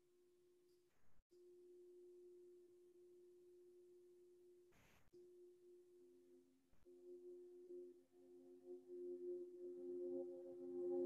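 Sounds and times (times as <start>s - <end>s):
faint steady tone: 0.7s - 11.0s.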